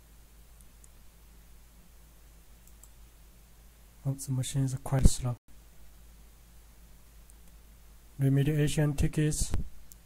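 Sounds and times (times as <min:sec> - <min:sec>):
low steady hum: 0:00.0 - 0:10.0
computer mouse clicks: 0:02.6 - 0:03.0.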